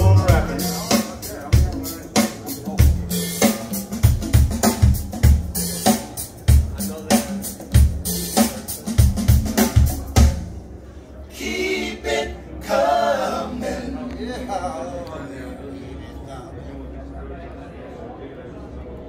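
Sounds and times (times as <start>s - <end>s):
music with drum beat and bass: 0.0s - 10.6s.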